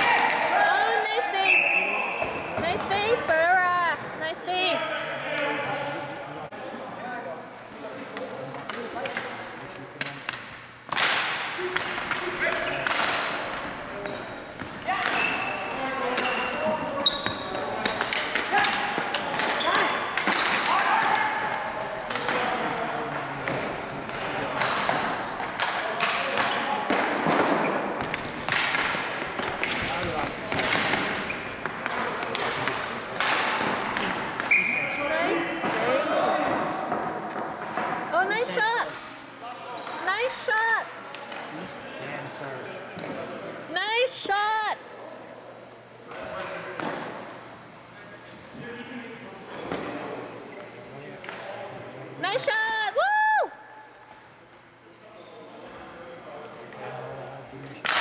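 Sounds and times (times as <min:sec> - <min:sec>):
shoe squeaks: 0:13.8 - 0:18.0, 0:24.6 - 0:25.3, 0:29.9 - 0:31.6.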